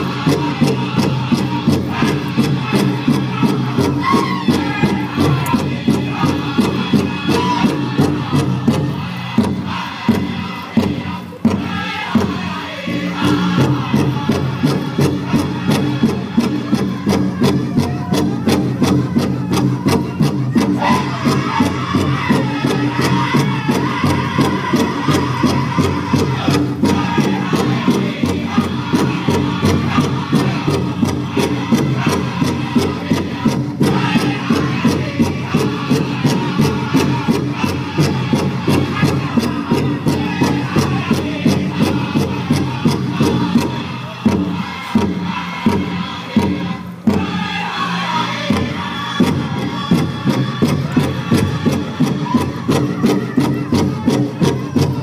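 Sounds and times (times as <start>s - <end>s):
steady beat on large drum: 0.0s - 55.0s
voices chanting: 0.0s - 55.0s.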